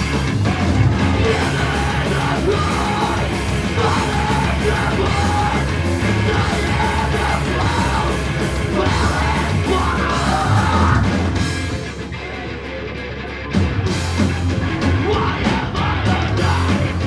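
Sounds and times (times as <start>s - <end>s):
shouted vocals: 0.0s - 11.4s, 14.8s - 17.0s
punk band playing live: 0.0s - 17.0s.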